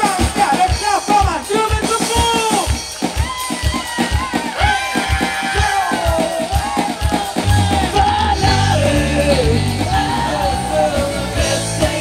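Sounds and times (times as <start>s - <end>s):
fast steady drum beat: 0.0s - 12.0s
guitar: 0.0s - 12.0s
person singing: 4.6s - 12.0s.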